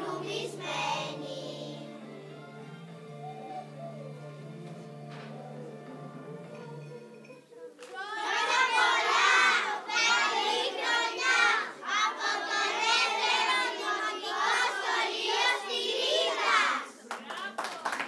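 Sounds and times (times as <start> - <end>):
children singing in unison: 0.0 - 2.3, 8.0 - 16.9
hand claps: 7.8 - 8.0, 17.1 - 18.0.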